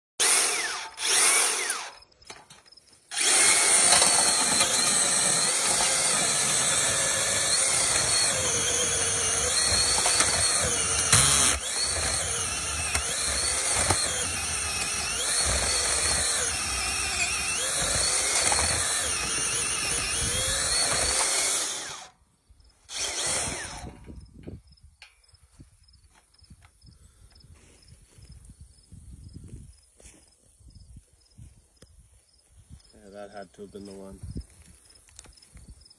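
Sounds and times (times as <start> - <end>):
earth auger boring into soil: 0.2 - 22.2, 22.8 - 24.6.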